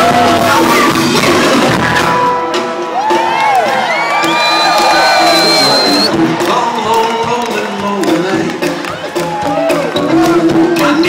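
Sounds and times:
live rock band playing: 0.0s - 11.0s
audience whooping and shouting: 2.1s - 7.0s, 8.9s - 10.0s
long high whistle: 4.2s - 6.1s.

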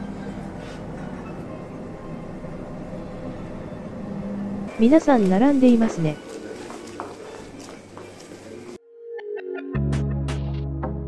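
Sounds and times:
lift mechanical hum and rumble: 0.0s - 6.2s.

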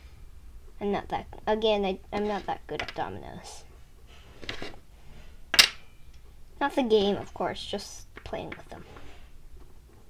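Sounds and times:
dominoes handled on tabletop: 4.4s - 4.8s.

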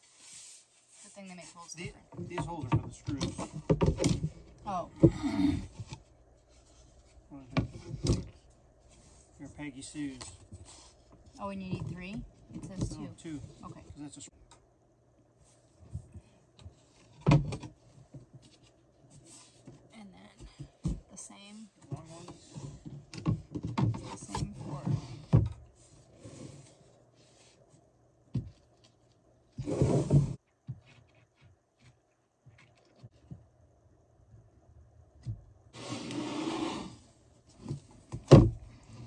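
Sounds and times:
loud board scrape: 29.6s - 30.4s, 35.8s - 37.1s.

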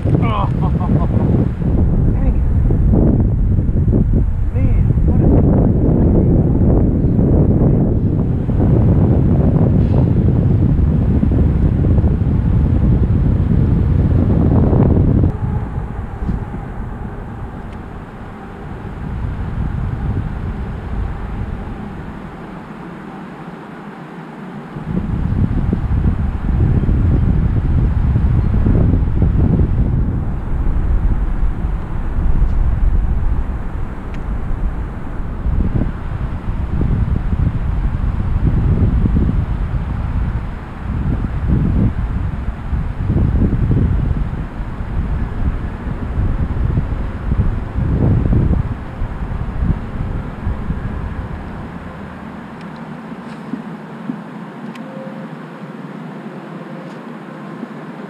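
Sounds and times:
wind gusts buffeting microphone: 0.0s - 54.7s.

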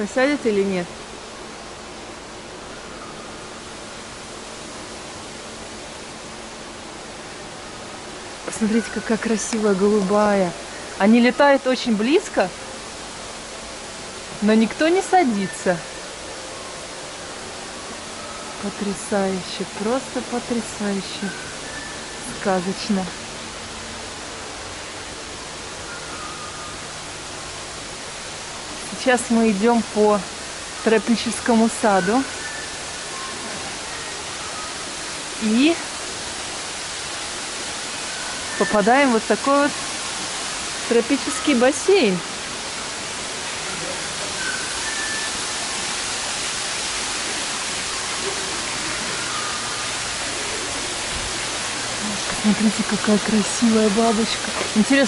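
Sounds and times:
background hiss: 0.0s - 55.0s
waterfall rushing into pool: 0.0s - 55.0s.

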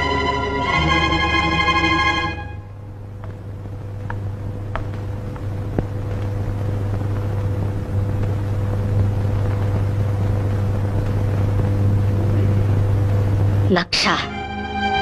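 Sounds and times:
low sustained drone: 0.0s - 3.0s, 14.2s - 15.0s
faint high hum: 0.0s - 15.0s.

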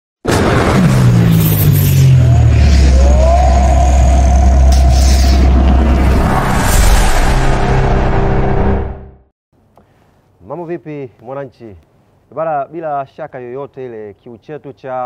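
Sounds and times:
rising whooshes: 1.1s - 9.3s
deep sustained rumble: 2.2s - 9.2s.

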